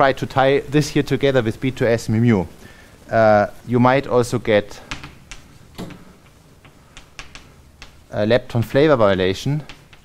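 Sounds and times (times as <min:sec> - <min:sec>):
chalk tapping on blackboard: 0:04.8 - 0:10.0.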